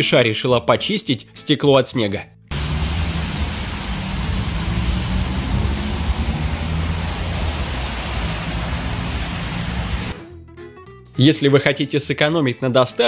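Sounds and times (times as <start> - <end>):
city street traffic: 2.5 - 10.2.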